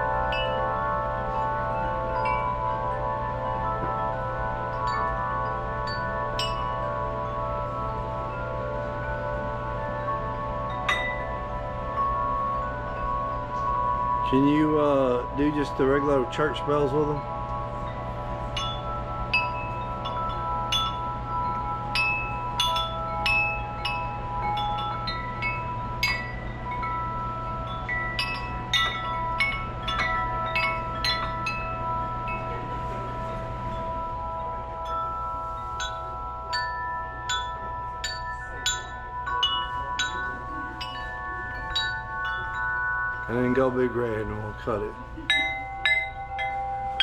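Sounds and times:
metal tube wind chimes ringing: 0.0s - 47.0s.

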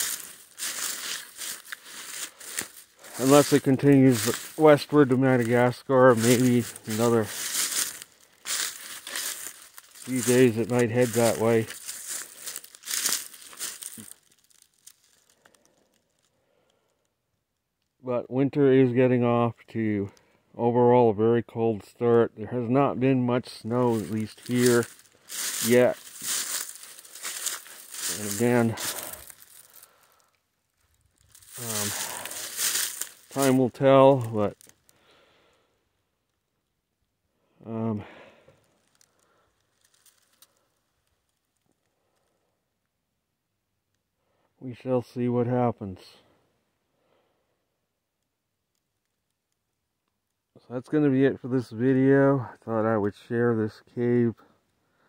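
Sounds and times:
footsteps crunching dry leaves: 0.0s - 15.5s, 23.6s - 30.2s, 30.9s - 34.8s, 39.7s - 40.6s
faint clicks and rustles: 11.7s - 18.0s, 24.1s - 33.6s, 38.5s - 42.4s.

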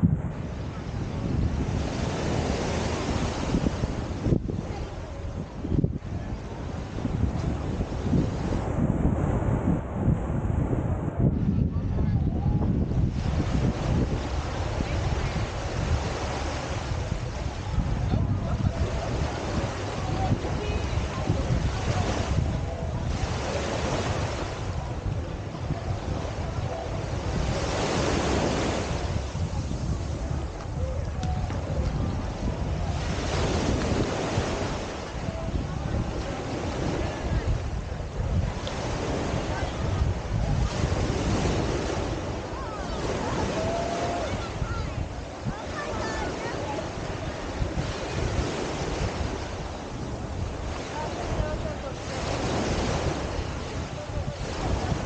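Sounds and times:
small waves lapping on beach: 0.0s - 10.0s, 12.0s - 55.0s
wind rumbling on microphone: 0.0s - 55.0s.

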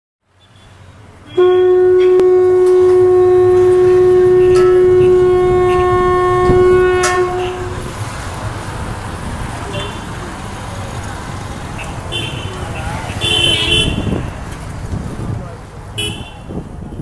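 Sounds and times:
long blown horn note: 1.2s - 7.9s.

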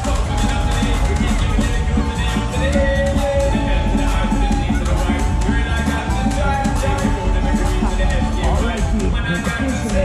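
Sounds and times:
upbeat slot machine music: 0.0s - 10.0s.

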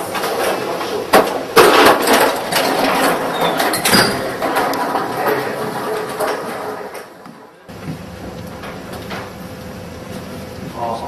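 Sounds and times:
machine mechanical clatter: 0.0s - 9.7s.

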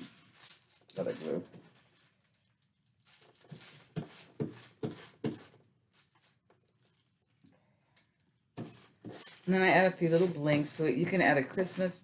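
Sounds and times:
plastic bag crinkling: 0.0s - 8.0s, 8.8s - 12.0s.

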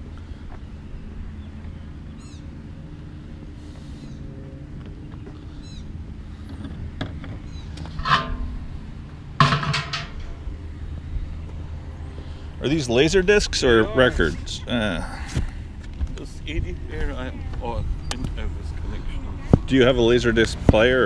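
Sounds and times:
low engine-like hum: 0.0s - 21.0s.

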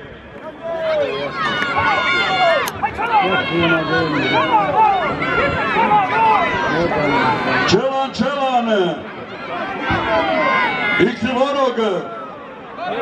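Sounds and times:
crowd of men shouting: 0.7s - 8.4s, 9.4s - 13.0s.

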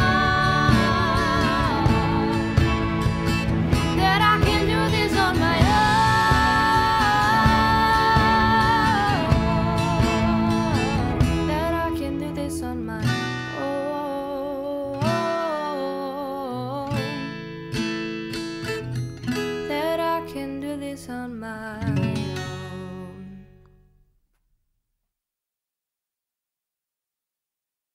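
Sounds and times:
person singing: 0.0s - 3.0s, 3.9s - 17.3s, 19.7s - 23.4s
strummed acoustic guitar: 0.0s - 23.6s.

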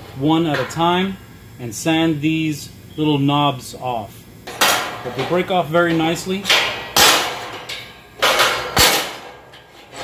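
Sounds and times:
metal parts clanking: 4.5s - 10.0s.

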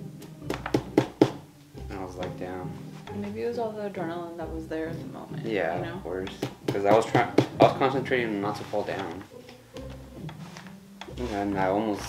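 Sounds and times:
soft music: 0.0s - 12.0s
sharp taps: 6.3s - 7.6s.

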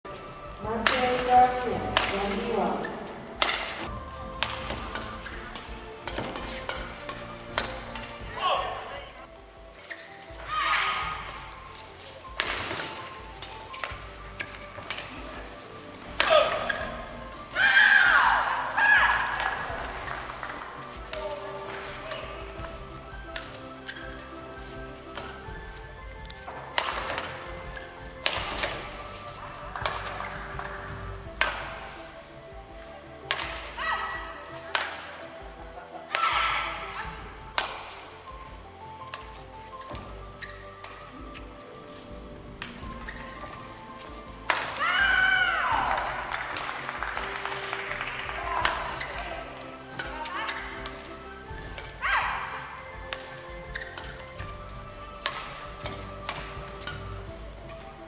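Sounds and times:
faint background music: 0.0s - 58.0s
rackets striking shuttlecock: 0.1s - 58.0s
shoe squeaks on court: 9.8s - 10.4s, 11.2s - 17.2s, 39.7s - 41.6s, 42.7s - 43.7s, 53.1s - 54.6s.

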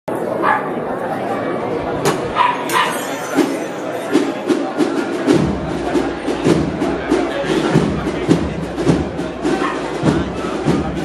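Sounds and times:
street crowd murmur: 0.1s - 11.0s.

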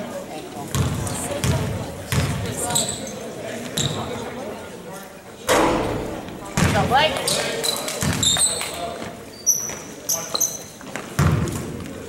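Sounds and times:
voices talking: 0.2s - 10.8s
loud knock: 5.5s - 6.9s
basketball bouncing on wooden floor: 6.6s - 7.0s.

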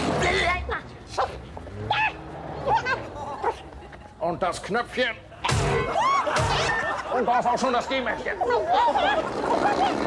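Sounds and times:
small dog yelping: 1.2s - 3.6s.

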